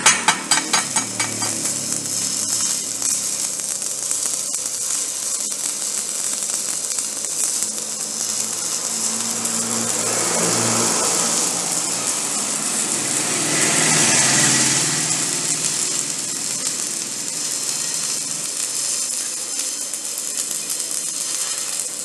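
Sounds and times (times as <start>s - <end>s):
welding arc sizzling and crackling: 0.0s - 22.0s.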